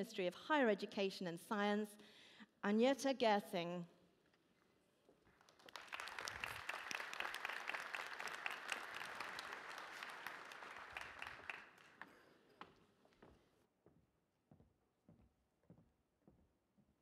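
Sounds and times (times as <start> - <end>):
audience applauding: 5.4 - 12.4.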